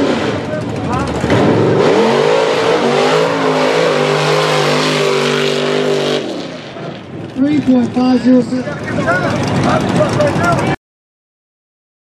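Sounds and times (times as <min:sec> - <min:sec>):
truck engine revving hard: 0:00.0 - 0:06.9.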